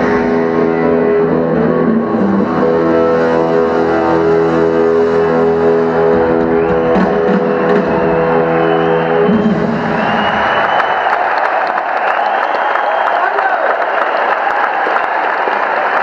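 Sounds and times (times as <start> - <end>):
rock band final chord: 0.0 - 10.1
crowd applause and cheering: 0.0 - 16.0.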